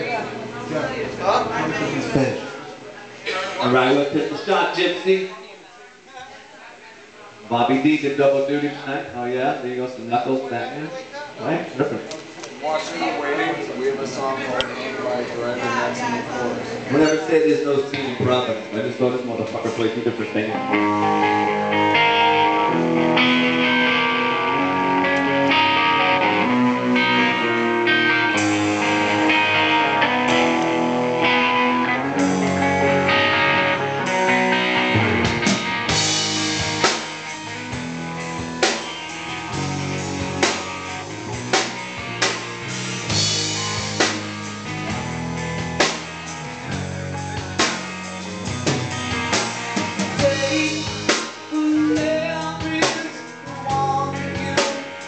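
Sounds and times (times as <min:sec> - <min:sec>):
amplified guitar chords: 0:15.6 - 0:55.0
drum kit hits: 0:34.1 - 0:51.6.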